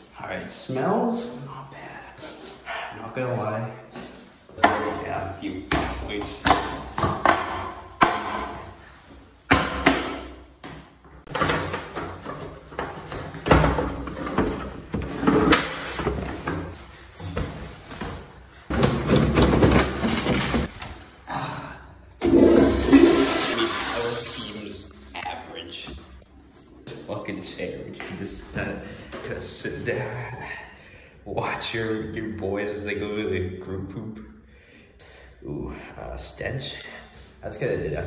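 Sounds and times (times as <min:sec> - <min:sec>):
toilet flushing: 0:22.2 - 0:24.8.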